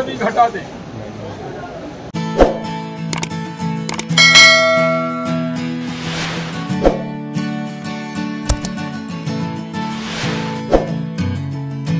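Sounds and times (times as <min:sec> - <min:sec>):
background music with guitar: 0:02.2 - 0:11.9
bright bell chime: 0:04.2 - 0:05.7.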